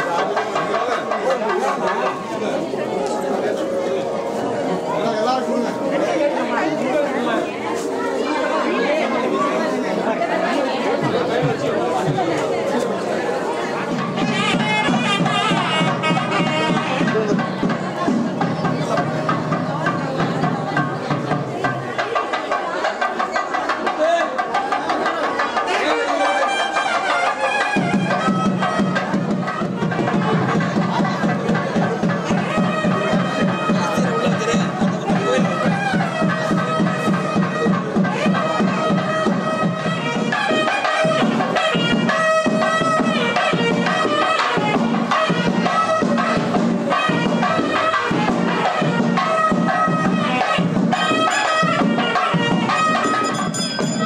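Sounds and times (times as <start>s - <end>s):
rapid drumbeat: 0.0s - 3.6s, 9.4s - 54.0s
crowd chatter: 0.0s - 54.0s
music: 0.0s - 54.0s
reed pipes playing wailing notes: 12.2s - 17.3s, 32.3s - 54.0s.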